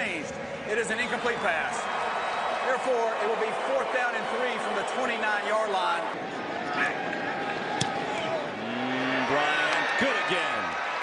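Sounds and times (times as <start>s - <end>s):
stadium crowd shouting and cheering: 0.0s - 11.0s.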